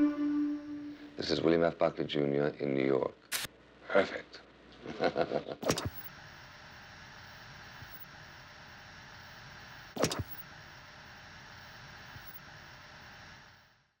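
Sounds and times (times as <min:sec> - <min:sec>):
steady low hiss: 0:00.0 - 0:14.0
sharp click: 0:03.3 - 0:03.5, 0:05.6 - 0:06.0, 0:10.0 - 0:10.4.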